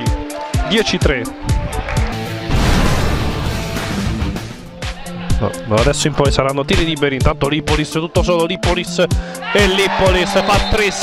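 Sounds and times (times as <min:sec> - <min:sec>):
background music with a beat: 0:00.0 - 0:11.0.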